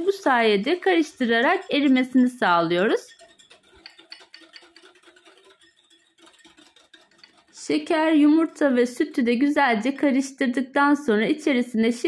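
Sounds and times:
whisk ticking against glass bowl: 0.0s - 10.1s.

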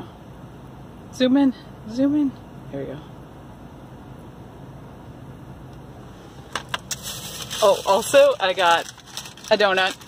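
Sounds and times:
car cabin hum: 2.0s - 10.0s.

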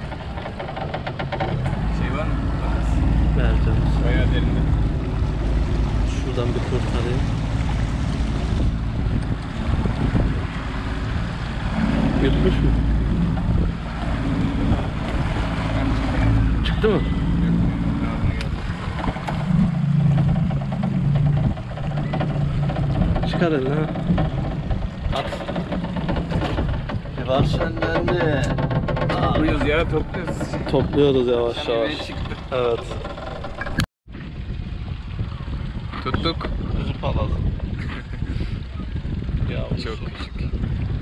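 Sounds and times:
motorboat engine running: 0.0s - 41.0s.

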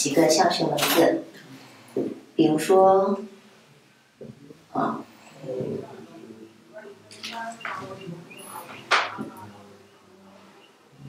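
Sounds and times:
marker squeaking on whiteboard: 7.5s - 9.4s.

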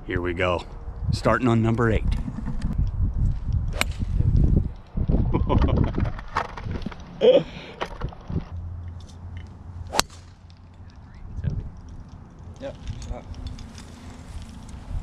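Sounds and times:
wind rumble on microphone: 0.0s - 7.2s, 7.9s - 8.6s, 11.1s - 15.0s
golf club striking ball: 3.7s - 4.1s, 9.9s - 10.6s.

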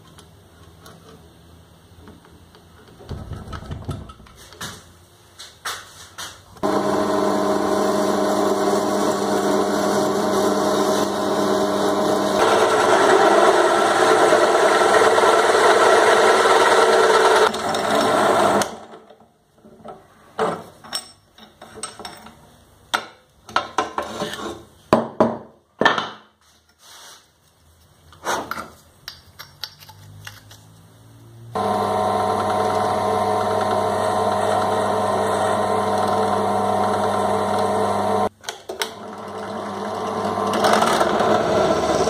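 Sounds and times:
drill press motor running: 6.6s - 18.8s, 31.6s - 38.3s, 38.9s - 42.0s
hole saw cutting: 40.1s - 42.0s.

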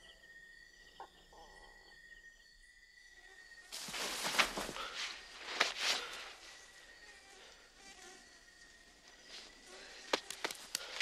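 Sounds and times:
insects buzzing and chirring: 0.0s - 11.0s.

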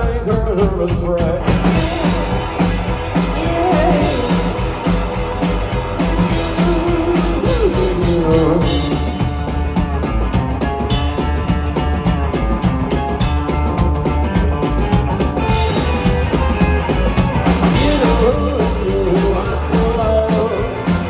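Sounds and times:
drum beat: 0.0s - 21.0s
electric guitar: 0.0s - 21.0s
heavy bass line: 0.0s - 21.0s.

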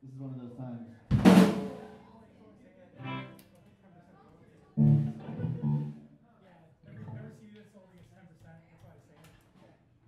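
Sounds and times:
bass guitar notes: 4.8s - 6.1s
electric guitar notes: 4.8s - 6.1s.

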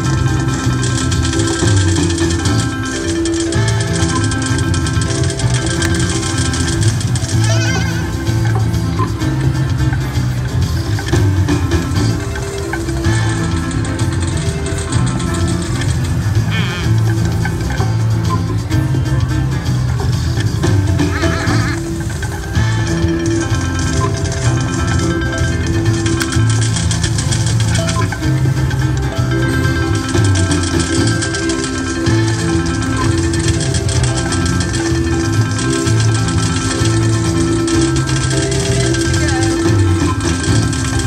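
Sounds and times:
slot machine looping melody: 0.0s - 41.0s.

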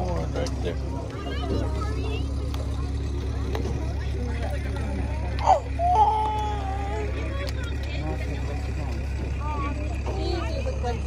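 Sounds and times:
faint voices: 0.0s - 11.0s
wagon engine drone: 0.0s - 11.0s.

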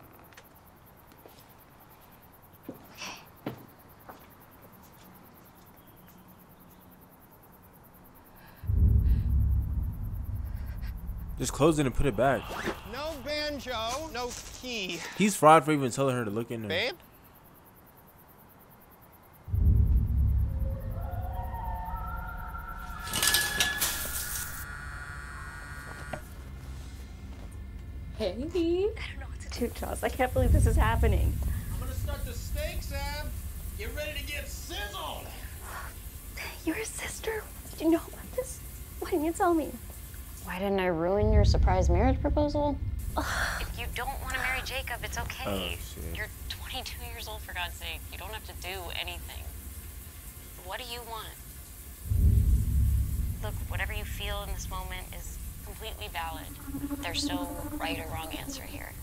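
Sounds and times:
deep low rumble: 8.7s - 13.8s, 19.5s - 23.1s, 26.4s - 36.4s, 41.0s - 47.0s, 52.0s - 59.0s
phone vibrating on wooden table: 24.6s - 26.3s.

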